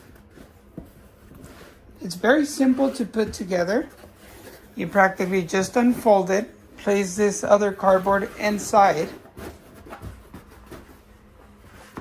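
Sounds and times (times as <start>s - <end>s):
soft fabric and cardboard rustling: 0.0s - 12.0s.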